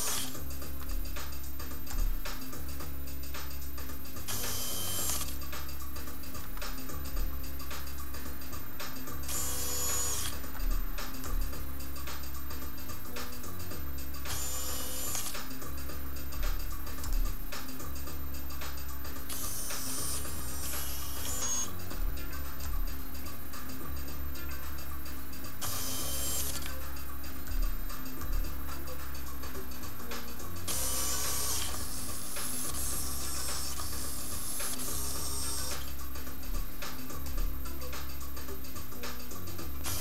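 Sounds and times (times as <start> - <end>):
robotic hand motors whirring: 0.0 - 2.7, 3.8 - 18.1, 18.7 - 24.6, 25.6 - 38.0, 38.8 - 40.0
steady low hum: 0.0 - 40.0.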